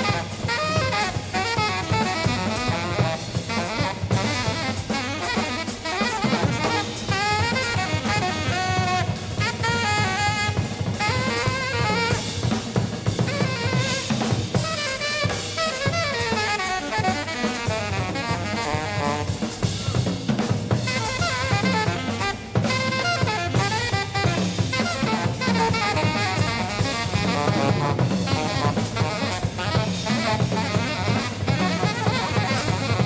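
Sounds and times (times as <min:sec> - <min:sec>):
alto saxophone fast runs: 0:00.0 - 0:33.0
drum kit playing: 0:00.0 - 0:33.0.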